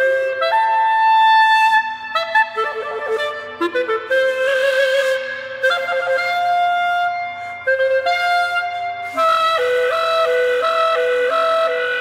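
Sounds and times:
clarinet playing: 0.0 - 12.0.

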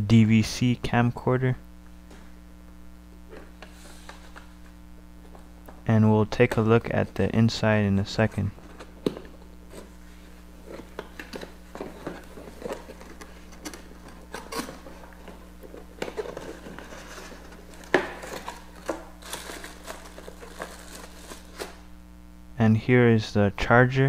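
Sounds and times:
cardboard rustling and scraping: 3.3 - 5.8, 8.5 - 21.8.

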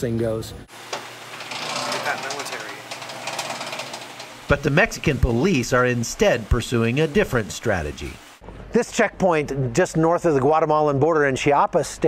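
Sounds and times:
steady hiss: 0.6 - 8.8.

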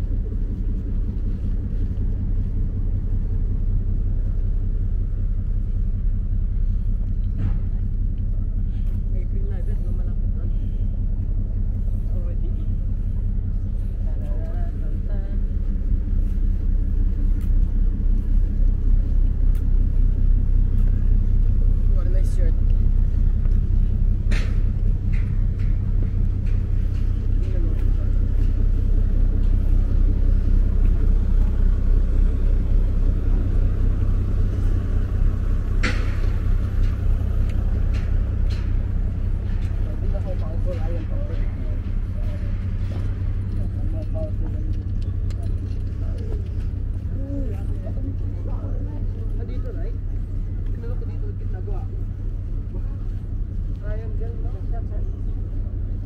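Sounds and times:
faint voices: 0.0 - 56.0
low engine rumble: 0.0 - 56.0.

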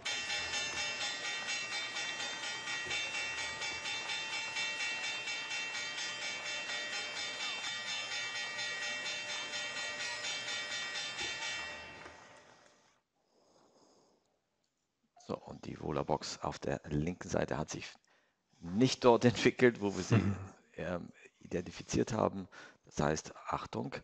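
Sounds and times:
electric bell ringing rapidly: 0.0 - 12.4.

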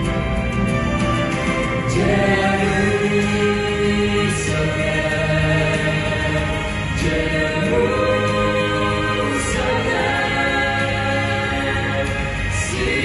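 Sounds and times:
vocal ensemble singing in harmony: 0.0 - 13.0.

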